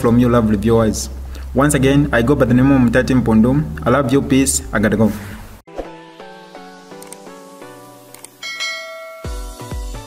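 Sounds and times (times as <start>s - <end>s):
quick clicks: 6.9s - 7.2s, 8.1s - 8.4s
notification bell ding: 8.4s - 9.7s
electronic dance music: 9.2s - 10.0s.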